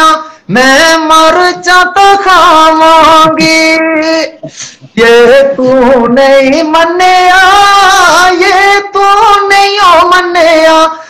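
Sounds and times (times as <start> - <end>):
person singing unaccompanied folk song: 0.0 - 11.0.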